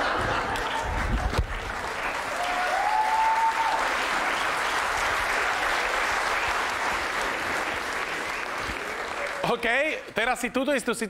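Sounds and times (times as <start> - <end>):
audience applauding: 0.0 - 10.1.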